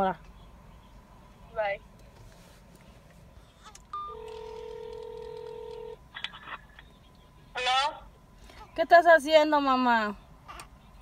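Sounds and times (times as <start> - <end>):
phone ringback tone: 4.0 - 6.0.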